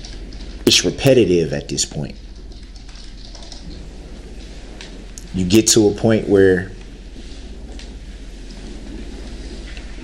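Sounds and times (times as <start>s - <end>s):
keyboard typing: 0.0s - 1.2s, 2.0s - 4.9s
low hum: 0.0s - 10.0s.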